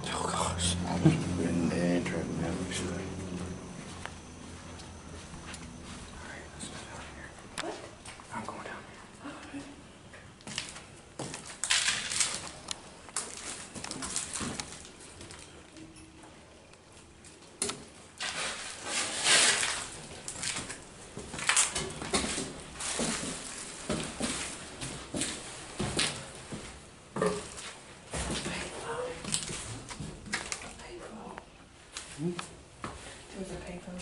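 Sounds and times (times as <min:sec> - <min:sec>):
footsteps on rubble and debris: 0:10.4 - 0:15.5, 0:19.5 - 0:26.8.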